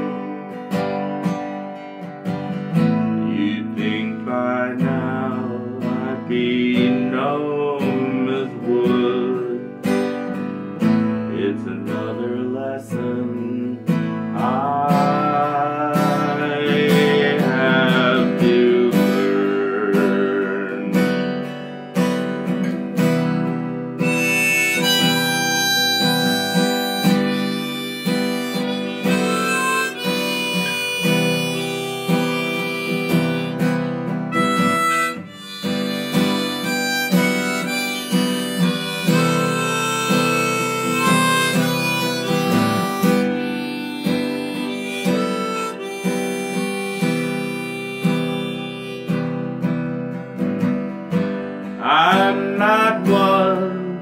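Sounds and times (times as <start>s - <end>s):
harmonica melody: 0.0s - 54.0s
strummed acoustic guitar: 0.0s - 54.0s.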